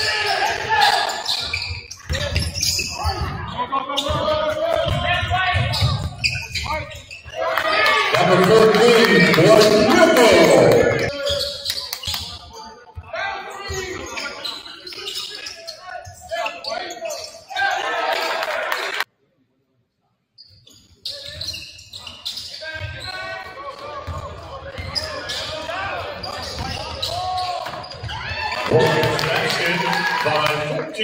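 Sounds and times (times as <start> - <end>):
voices in echoing hall: 0.0 - 31.0.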